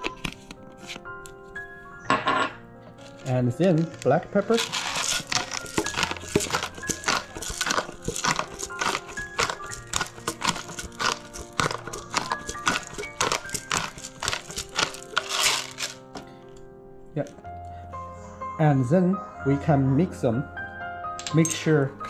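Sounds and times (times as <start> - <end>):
background music: 0.0 - 22.0
pepper grinder crunching: 3.0 - 16.3.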